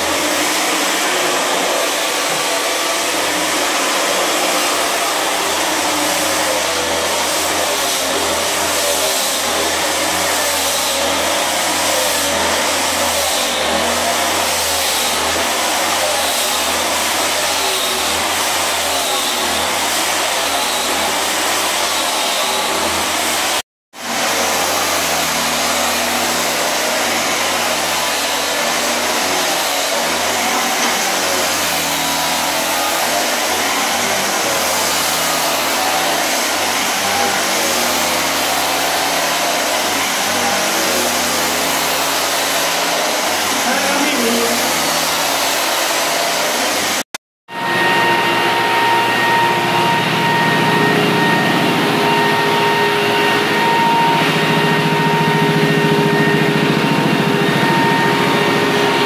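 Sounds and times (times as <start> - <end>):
electric sander grinding floor: 0.0 - 59.0.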